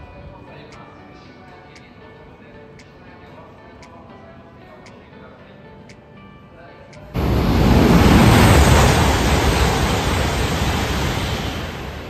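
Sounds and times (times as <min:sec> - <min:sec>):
train passing rushing noise: 0:07.2 - 0:12.0.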